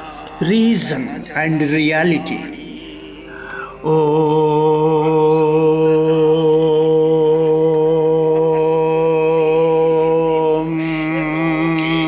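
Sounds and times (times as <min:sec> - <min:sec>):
low mantra chanting: 0:00.1 - 0:03.0, 0:03.6 - 0:12.0.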